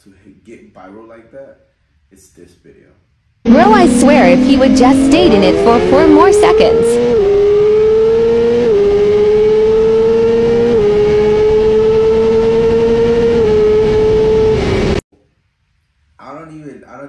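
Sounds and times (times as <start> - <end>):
motorcycle engine accelerating: 3.5 - 15.0.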